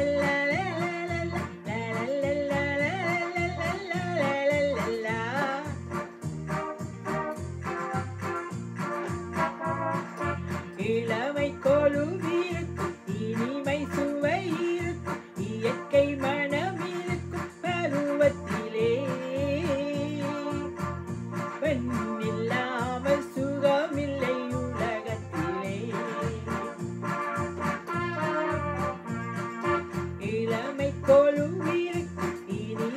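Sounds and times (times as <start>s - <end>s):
electronic keyboard melody: 3.2s - 10.7s.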